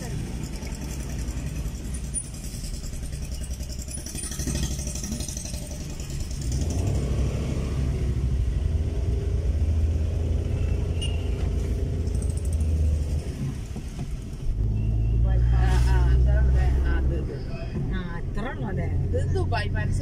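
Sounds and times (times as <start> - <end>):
car engine and road noise: 0.0 - 20.0.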